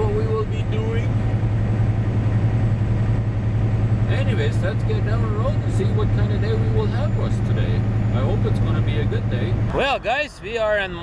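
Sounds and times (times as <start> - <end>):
road noise: 0.0 - 11.0
truck diesel engine drone: 0.0 - 11.0.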